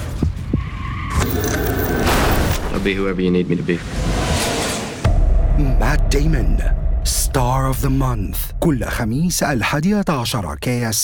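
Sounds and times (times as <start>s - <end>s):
car tyres squealing: 0.4s - 2.0s.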